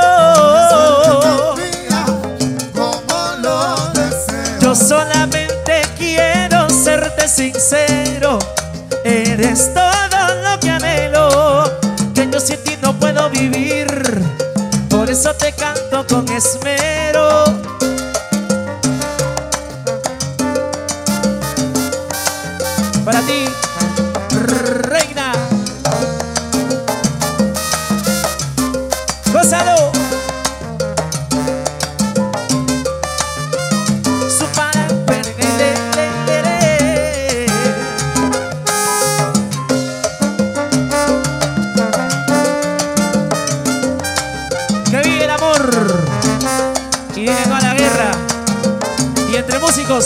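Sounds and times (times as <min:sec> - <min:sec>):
trumpet and trombone: 0:00.0 - 0:05.4, 0:06.2 - 0:08.4, 0:17.1 - 0:50.0
latin percussion: 0:00.0 - 0:50.0
salsa band playing: 0:00.0 - 0:50.0
horn section: 0:17.8 - 0:19.8, 0:20.4 - 0:25.4, 0:26.0 - 0:50.0.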